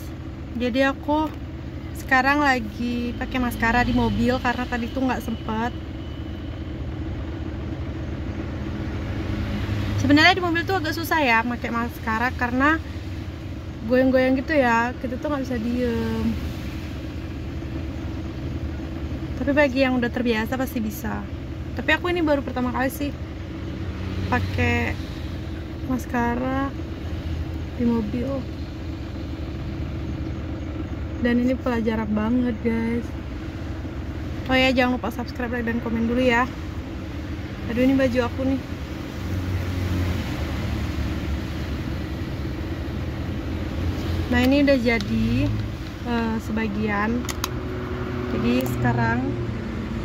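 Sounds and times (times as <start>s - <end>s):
car cabin low rumble: 0.0s - 50.0s
road noise: 0.0s - 50.0s.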